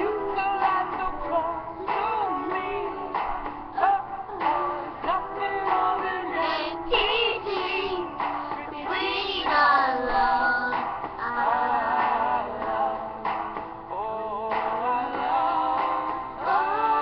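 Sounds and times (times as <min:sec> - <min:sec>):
backing music: 0:00.0 - 0:17.0
girls singing pop duet: 0:00.0 - 0:17.0.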